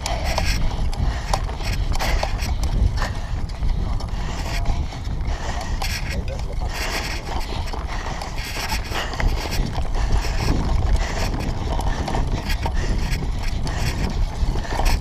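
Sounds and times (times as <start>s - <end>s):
bike rattling and knocking: 0.0s - 15.0s
wind and tyre rumble: 0.0s - 15.0s.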